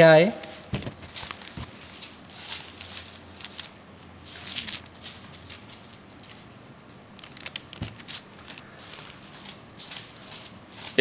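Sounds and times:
paper pages rustling: 0:00.7 - 0:03.7, 0:04.3 - 0:06.4, 0:07.2 - 0:11.0.

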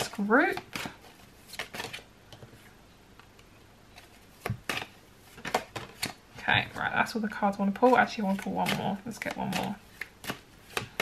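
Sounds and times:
cards clicking and rustling: 0:00.1 - 0:02.5, 0:04.0 - 0:06.2, 0:07.8 - 0:11.0.

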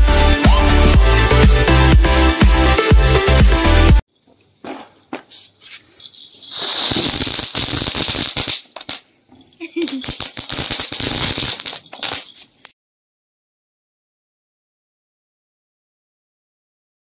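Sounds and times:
fountain firework hissing and crackling: 0:06.4 - 0:09.0, 0:09.6 - 0:12.4.

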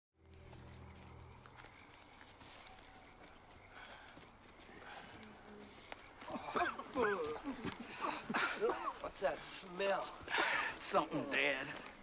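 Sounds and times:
footsteps crunching through leaves: 0:00.3 - 0:07.8.

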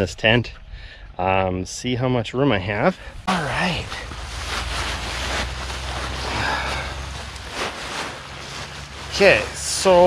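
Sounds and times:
nylon tent rustling: 0:03.3 - 0:10.0.

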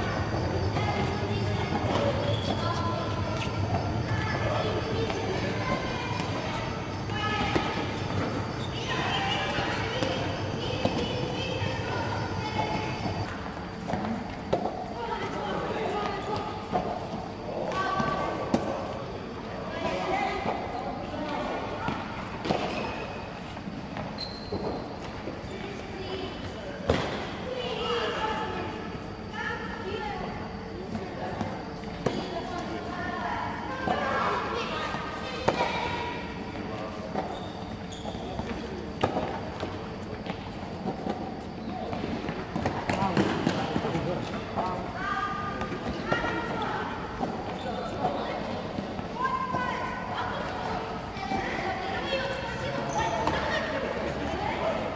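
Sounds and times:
children's voices and chatter: 0:00.0 - 0:23.7, 0:25.4 - 0:37.1, 0:41.3 - 0:54.9
rackets hitting tennis balls: 0:41.9 - 0:44.6.

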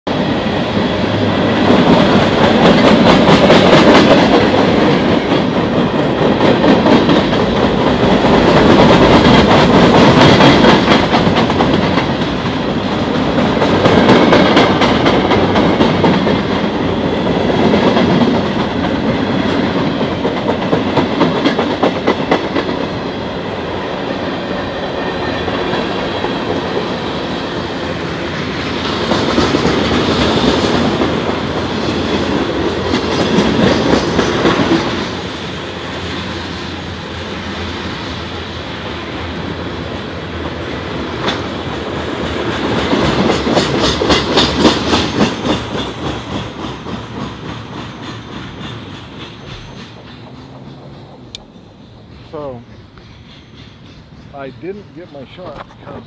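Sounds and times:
train wheels clacking on rails: 0:00.1 - 0:56.0.

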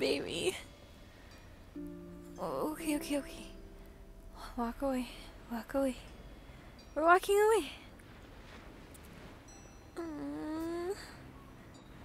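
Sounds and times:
faint background hiss: 0:00.0 - 0:12.0
woman's wordless vocal sound: 0:10.0 - 0:11.2.

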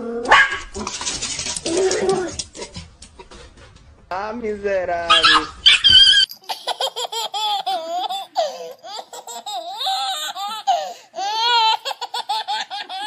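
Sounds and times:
high-pitched wavering laughter: 0:05.7 - 0:13.0.

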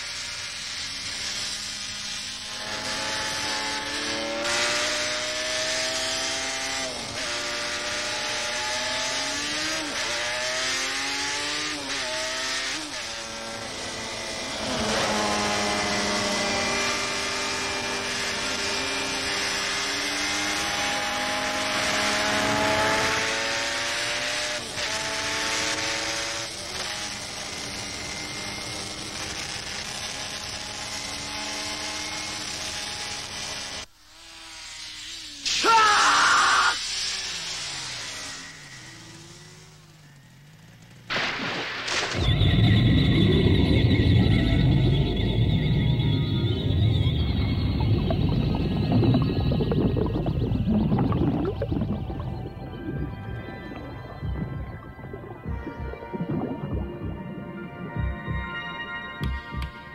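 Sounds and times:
racing motorcycle engines revving: 0:00.0 - 0:35.4, 0:36.3 - 0:41.2.

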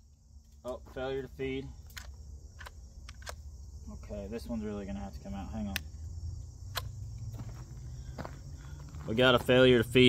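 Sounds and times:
insects chirping: 0:00.0 - 0:10.0
rifle action clicks: 0:01.8 - 0:03.4.

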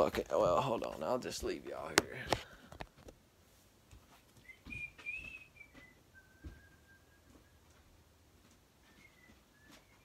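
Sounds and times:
person whistling: 0:04.4 - 0:07.8, 0:08.8 - 0:10.0.

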